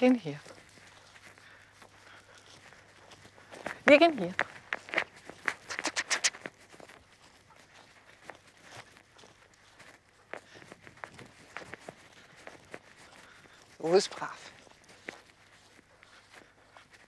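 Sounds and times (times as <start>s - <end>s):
footsteps on grass: 0.0s - 17.0s.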